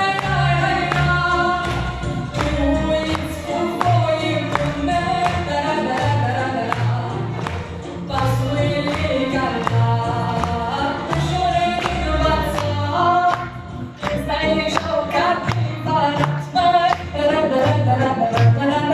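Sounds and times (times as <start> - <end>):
bass notes and steady beat: 0.0 - 18.9.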